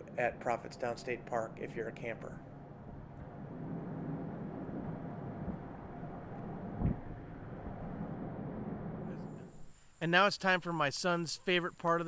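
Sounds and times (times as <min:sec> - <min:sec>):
vehicle engine and tyre noise: 0:01.2 - 0:09.5
vehicle bump: 0:02.8 - 0:09.5.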